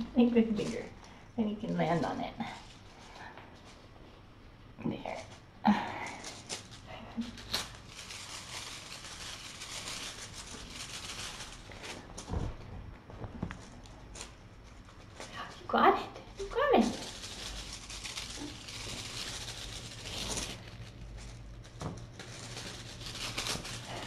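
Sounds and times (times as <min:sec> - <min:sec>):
kittens rustling on blanket: 0:06.1 - 0:24.0.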